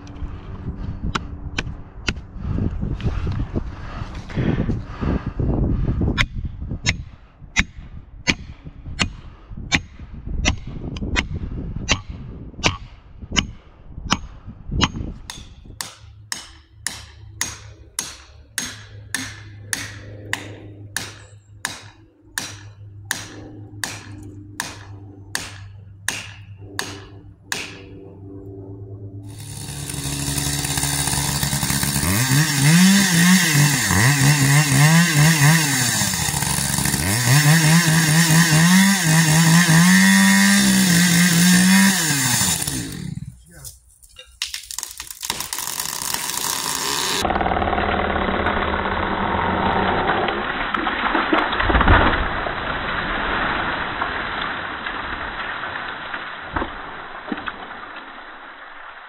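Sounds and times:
chainsaw cutting: 0:29.2 - 0:43.6, 0:44.5 - 0:51.0.

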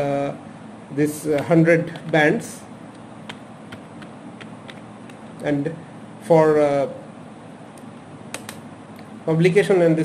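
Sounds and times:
faint fan-like hum: 0:00.0 - 0:10.0
keyboard key clicking: 0:03.3 - 0:05.2.

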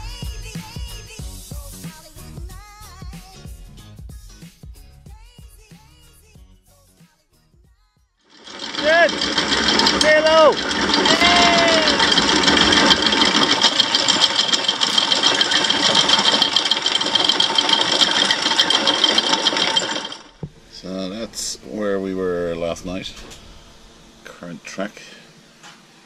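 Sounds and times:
anchor chain rattling: 0:08.3 - 0:20.4
people shouting: 0:10.2 - 0:12.2.

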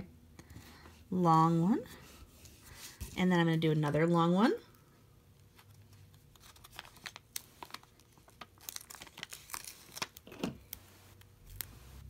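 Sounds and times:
paper backing peeling crackle: 0:05.4 - 0:12.0.

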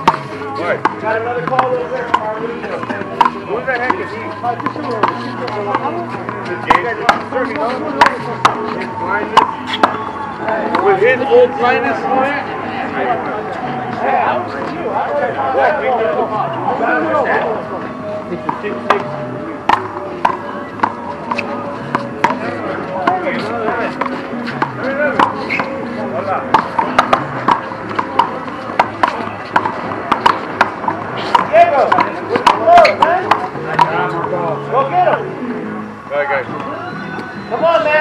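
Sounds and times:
music: 0:00.0 - 0:38.0
voices: 0:00.0 - 0:38.0.

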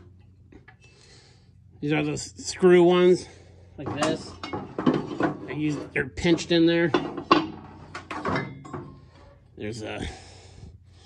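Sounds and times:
metal pulleys clanking: 0:03.8 - 0:09.4.

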